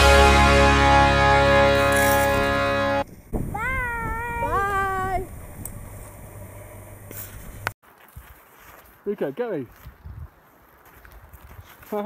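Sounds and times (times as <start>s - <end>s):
song playing: 0.0s - 3.0s.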